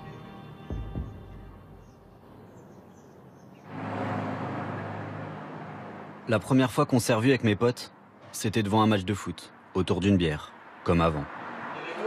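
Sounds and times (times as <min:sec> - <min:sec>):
soft background music: 0:00.0 - 0:02.6
car driving past: 0:03.4 - 0:06.3, 0:10.6 - 0:12.0.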